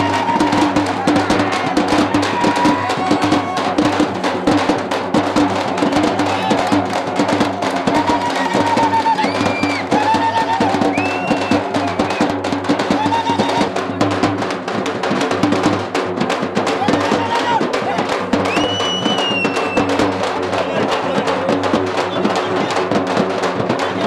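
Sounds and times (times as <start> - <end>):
fast dense drumming: 0.0 - 24.0.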